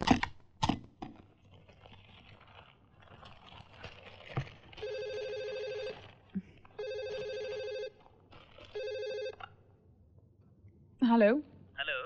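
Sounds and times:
cordless telephone ringing: 4.8s - 6.0s, 6.8s - 8.0s, 8.7s - 9.4s.

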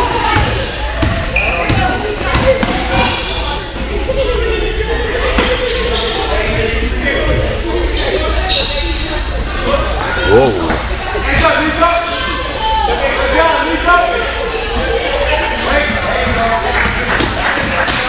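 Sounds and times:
people shouting and chattering: 0.0s - 18.0s
sneakers squeaking on court: 0.3s - 6.6s, 8.0s - 11.5s.

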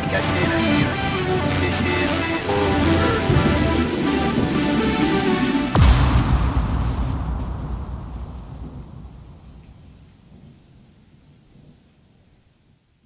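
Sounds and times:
low rumbling electronic noise: 0.0s - 10.4s.

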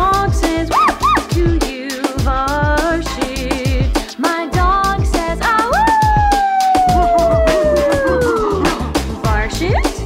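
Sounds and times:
upbeat song with drum beat: 0.0s - 10.0s
bouncy wobbling notes: 5.8s - 8.9s
downward gliding tone: 6.0s - 8.8s.

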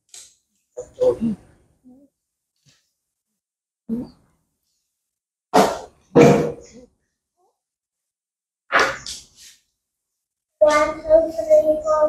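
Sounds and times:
child's sing-song voice: 10.6s - 12.0s.

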